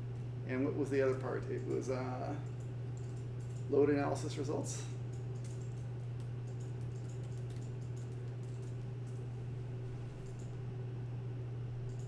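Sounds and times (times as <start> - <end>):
keyboard typing: 5.1 - 9.2.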